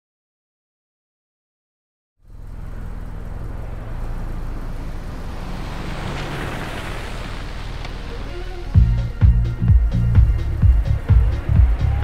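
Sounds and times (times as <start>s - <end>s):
car engine hum: 2.2s - 12.0s
road and traffic noise: 2.2s - 12.0s.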